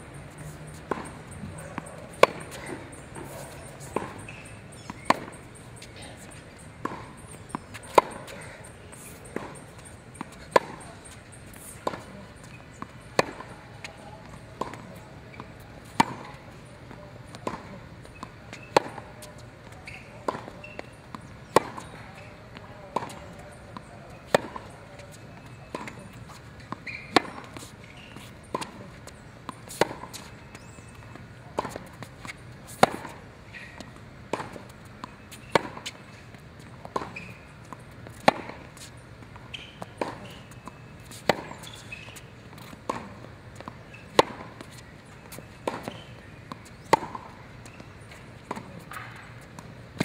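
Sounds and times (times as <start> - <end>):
tennis racket hitting ball: 0.2 - 50.0
ball bouncing on hard court: 0.3 - 16.7, 17.3 - 31.0, 31.6 - 36.0, 36.9 - 50.0.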